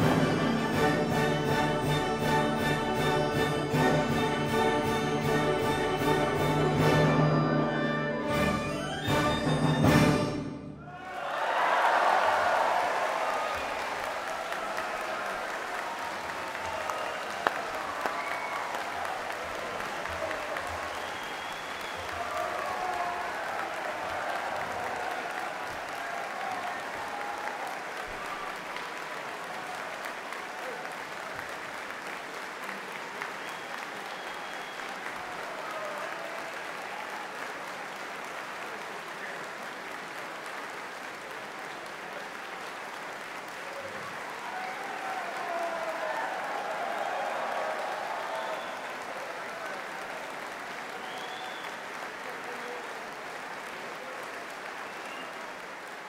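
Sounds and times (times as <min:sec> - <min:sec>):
audience applauding: 0:00.0 - 0:56.0
people cheering: 0:00.0 - 0:56.0.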